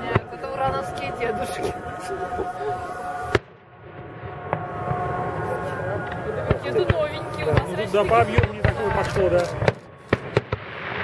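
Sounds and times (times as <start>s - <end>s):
sharp firework bang: 6.4s - 9.0s, 9.6s - 11.0s.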